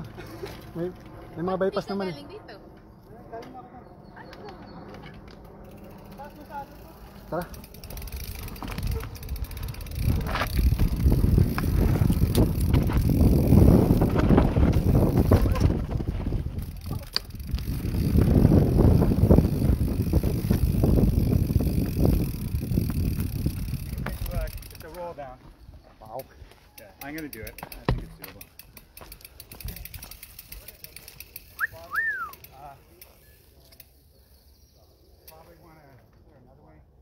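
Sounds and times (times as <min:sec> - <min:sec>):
bike tyre rumble: 0:00.0 - 0:01.8, 0:04.4 - 0:25.7, 0:26.4 - 0:34.5
bike clattering over roots: 0:07.4 - 0:25.1, 0:27.0 - 0:31.5
wind buffeting microphone: 0:07.8 - 0:24.9.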